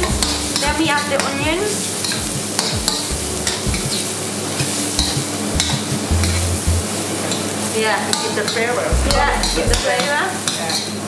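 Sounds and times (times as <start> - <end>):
vegetables sizzling in hot oil: 0.0 - 11.0
ladle scraping and knocking wok: 4.6 - 6.8.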